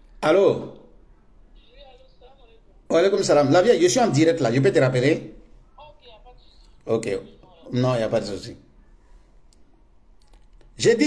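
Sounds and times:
man speaking: 1.6 - 8.7, 10.8 - 11.0.

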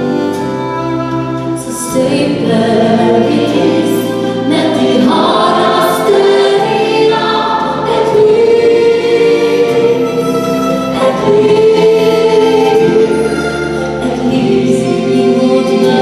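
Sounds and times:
live band playing: 0.0 - 16.0
steady bass line: 0.0 - 16.0
gospel choir singing: 1.6 - 16.0.

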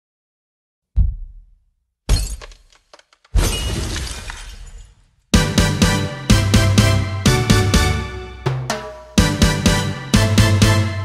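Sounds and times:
low thud: 1.0 - 2.4
glass bottles smashing: 2.1 - 2.7, 3.4 - 5.1.

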